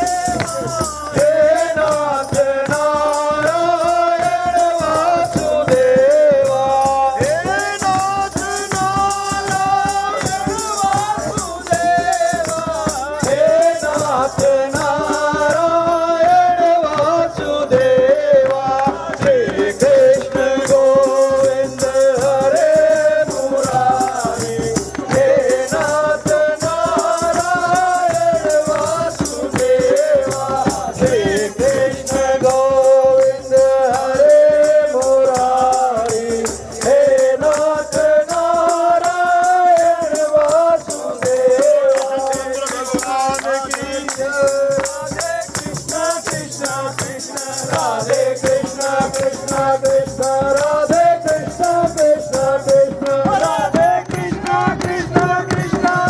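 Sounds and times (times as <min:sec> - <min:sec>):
jingle rattle shaking: 0:00.0 - 0:15.8, 0:19.6 - 0:56.0
hand claps: 0:00.0 - 0:56.0
men singing a hymn: 0:00.0 - 0:56.0.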